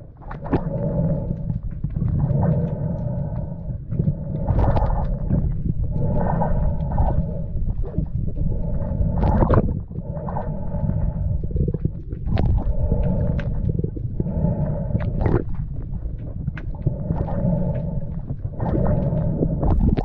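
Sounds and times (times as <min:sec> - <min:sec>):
faint hum: 0:00.0 - 0:20.0
underwater low rumble: 0:00.0 - 0:20.0.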